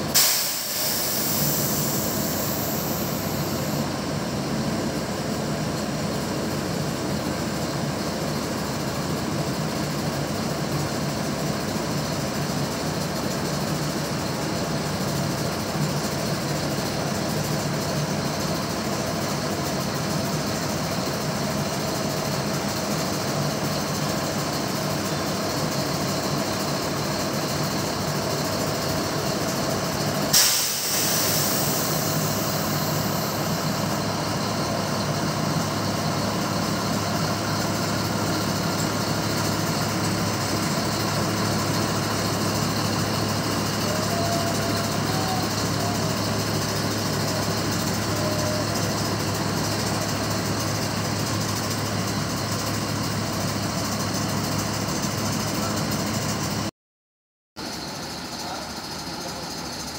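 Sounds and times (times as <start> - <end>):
loud hiss: 0.0 - 4.2, 20.1 - 52.0
diesel engine running: 0.0 - 56.7.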